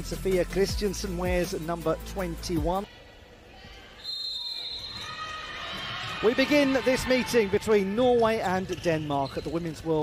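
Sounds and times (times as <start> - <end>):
sports hall ambience: 0.0 - 10.0.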